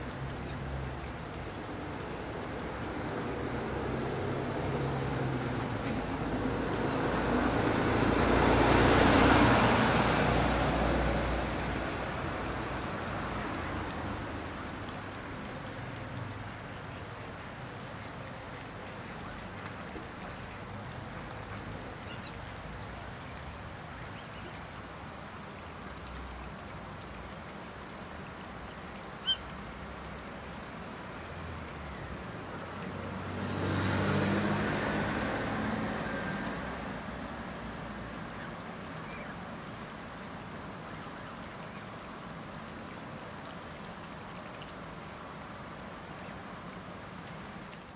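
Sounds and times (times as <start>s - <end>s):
pond ambience: 0.0s - 47.9s.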